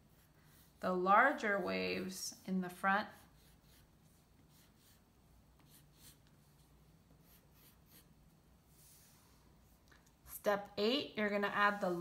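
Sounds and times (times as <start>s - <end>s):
pencil scratching on paper: 0.0s - 9.1s.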